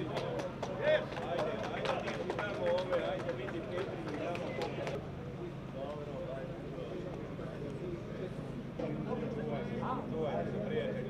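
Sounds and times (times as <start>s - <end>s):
crowd of men talking: 0.0s - 11.0s.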